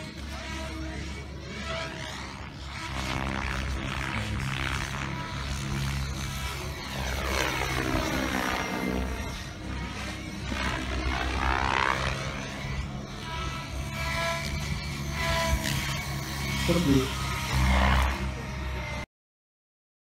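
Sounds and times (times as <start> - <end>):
model helicopter rotor whine: 0.0 - 19.1.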